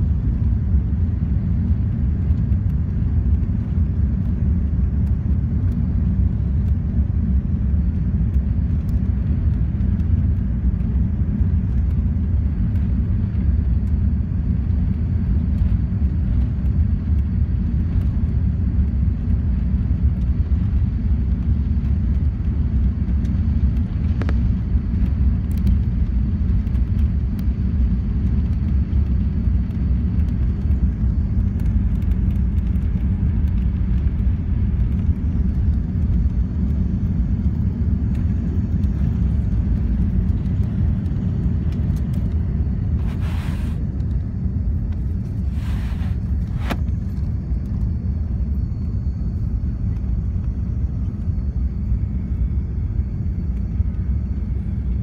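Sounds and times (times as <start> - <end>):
aircraft cabin rumble taxiing: 0.0 - 55.0.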